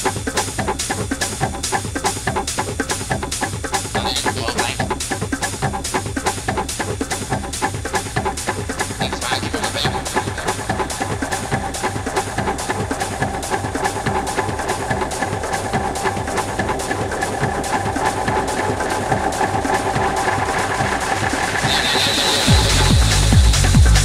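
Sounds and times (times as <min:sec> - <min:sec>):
acid techno track: 0:00.0 - 0:24.0
clicking percussion: 0:00.0 - 0:24.0
held synth tones: 0:21.6 - 0:22.7.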